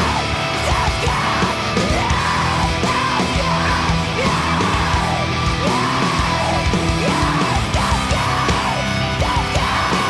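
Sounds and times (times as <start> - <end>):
rock band playing: 0.0 - 10.0
yelled vocals: 0.0 - 10.0.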